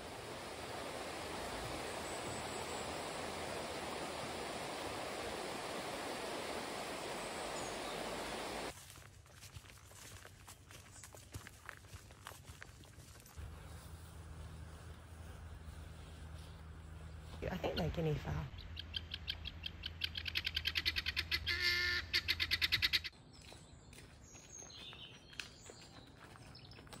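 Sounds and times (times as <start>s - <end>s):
stream rushing over rocks: 0.0s - 8.7s
footsteps on grass: 8.7s - 18.3s, 23.3s - 27.0s.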